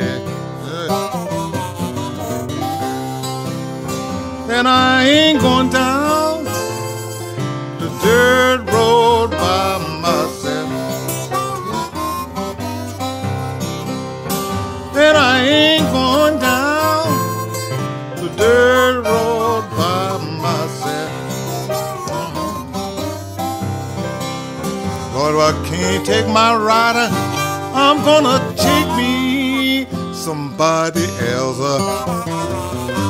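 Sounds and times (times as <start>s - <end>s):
acoustic guitar accompaniment: 0.0s - 33.0s
harmonica bending notes: 0.0s - 33.0s.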